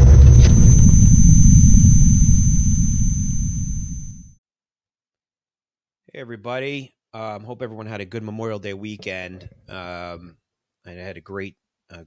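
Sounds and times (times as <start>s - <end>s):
deep rumble: 0.0s - 4.3s
thin high tone: 0.0s - 4.3s.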